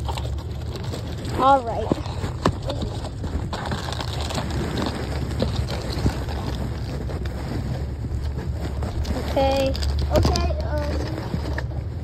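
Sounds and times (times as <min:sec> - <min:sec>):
muffled rubbing on microphone: 0:00.0 - 0:12.0
steady low rumble: 0:00.0 - 0:12.0.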